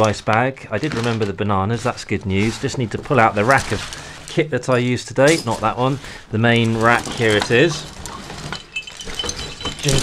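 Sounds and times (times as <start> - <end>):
metal carabiners jingling: 6.6 - 10.0.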